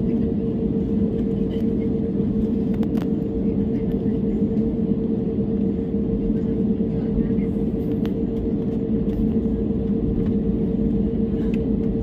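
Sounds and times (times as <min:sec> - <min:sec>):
jet engine drone in cabin: 0:00.0 - 0:12.0.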